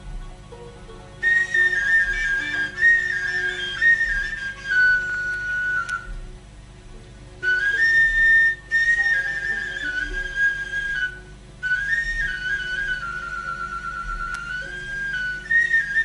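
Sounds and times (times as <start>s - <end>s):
flute melody: 0.0s - 6.4s, 7.4s - 16.0s.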